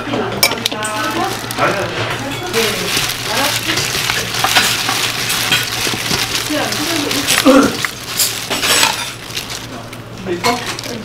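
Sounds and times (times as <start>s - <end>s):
leaves rustling in a bowl: 0.8s - 11.0s.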